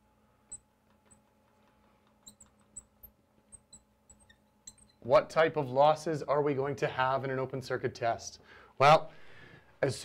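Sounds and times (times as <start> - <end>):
marker squeaking on glass: 0.5 - 5.2.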